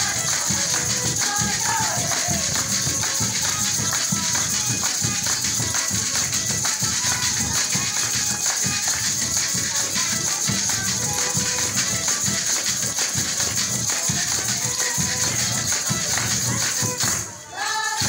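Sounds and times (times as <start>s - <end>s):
hand-beaten drum: 0.0s - 17.3s
maracas and tambourine shaking: 0.0s - 18.0s.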